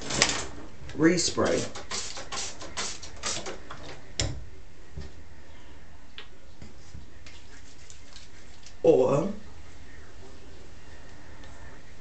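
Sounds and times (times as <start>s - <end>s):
spray bottle hissing sprays: 1.5s - 3.5s.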